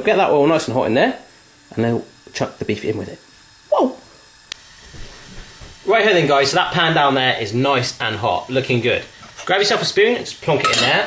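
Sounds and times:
gas burner hissing: 0.0 - 11.0.

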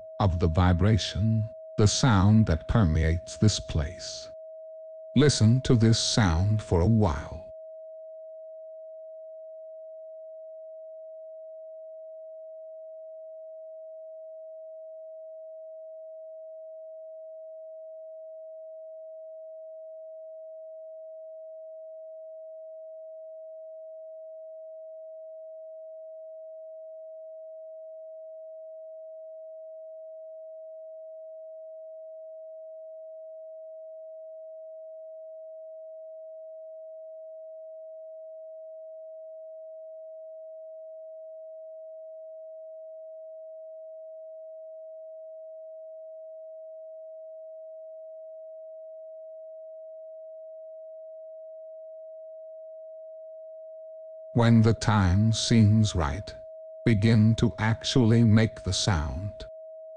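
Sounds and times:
steady sine tone: 0.0 - 59.9.

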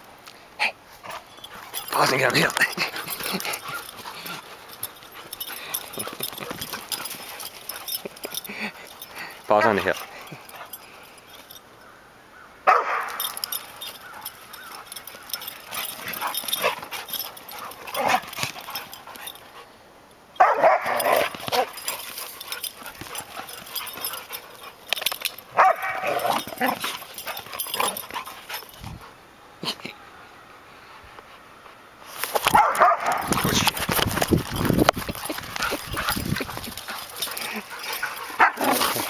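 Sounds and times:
dogs barking while play-fighting: 1.1 - 11.5, 12.6 - 19.6, 20.4 - 28.8, 32.2 - 39.0.

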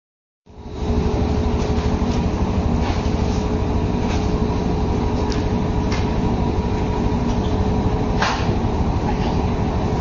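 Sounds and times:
low mechanical rumble with hum: 0.5 - 10.0.

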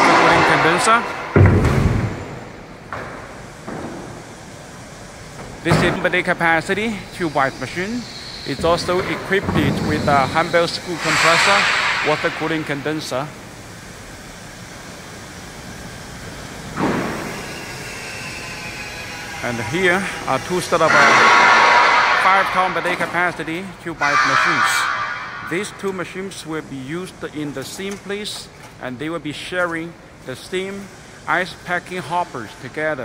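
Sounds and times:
heavy deep thump: 0.0 - 2.5
factory machinery hum: 0.0 - 33.0
workshop noise: 0.0 - 33.0
machine rushing into high whine: 6.2 - 13.8.

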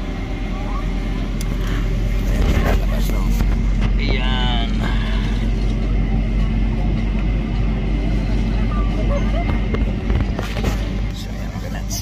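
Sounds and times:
airliner cabin drone: 0.0 - 12.0.

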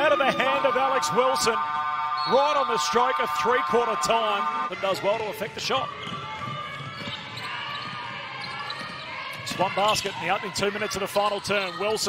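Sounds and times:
faint sneaker squeaks: 6.0 - 10.1.

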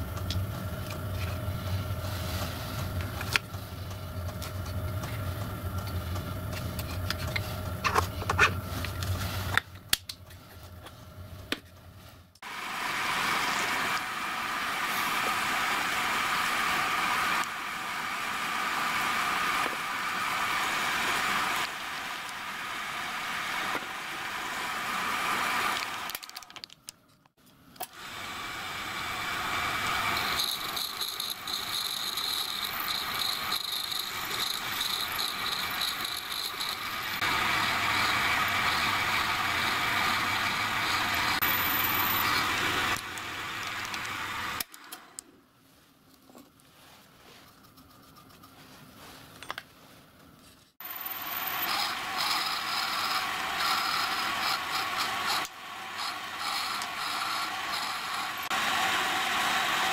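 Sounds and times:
machine whine: 27.8 - 45.0, 50.8 - 59.9
drill press drilling metal: 29.2 - 43.0, 51.1 - 59.9.

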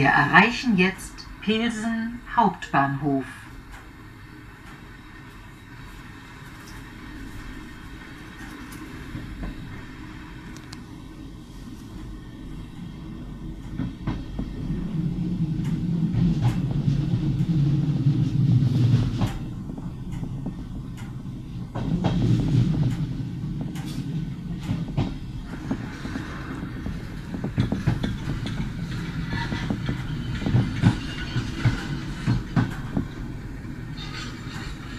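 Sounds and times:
train rumbling on track: 0.0 - 34.9.

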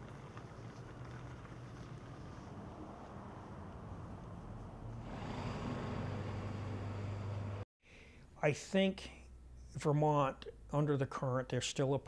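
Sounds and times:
traffic noise: 0.0 - 7.6
vehicle engine humming: 0.1 - 7.6.

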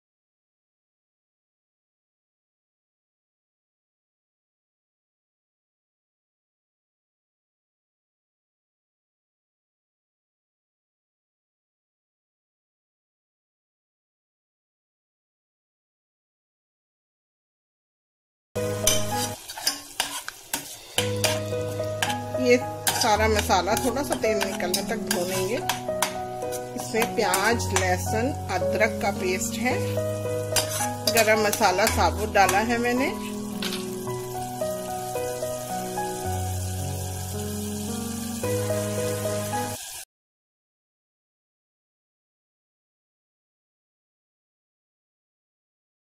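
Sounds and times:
slow background music: 18.6 - 19.4, 20.9 - 39.9
masala sizzling in oil: 18.6 - 40.1.

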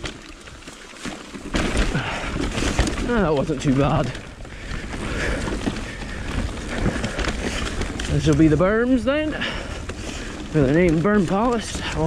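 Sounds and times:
bike knocking over rough ground: 0.0 - 12.0
bike tyres on loose dirt: 0.0 - 12.0.

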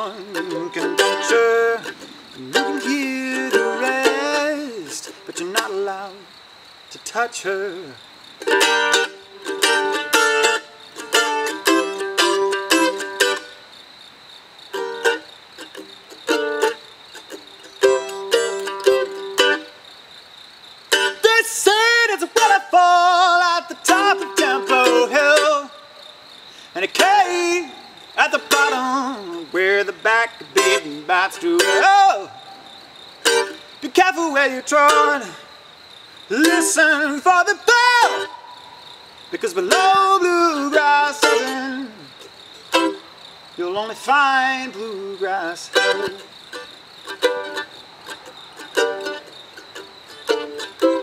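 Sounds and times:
mandolin picked notes: 0.0 - 5.9, 8.4 - 13.6, 14.8 - 19.8, 20.9 - 21.3, 23.8 - 25.7, 27.0 - 35.4, 36.3 - 43.1, 44.6 - 51.0
man singing: 0.0 - 6.3, 7.0 - 8.0, 21.0 - 26.0, 26.7 - 32.7, 33.3 - 35.5, 36.3 - 42.2, 43.6 - 46.2
high insect drone: 0.0 - 51.0.

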